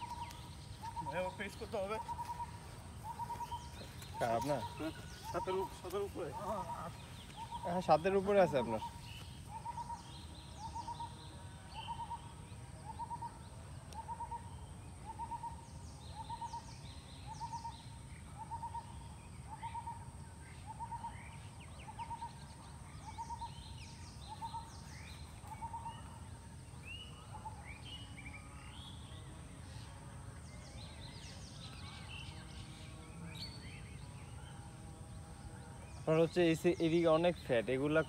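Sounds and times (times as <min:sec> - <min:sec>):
birds chirping: 0:00.0 - 0:38.0.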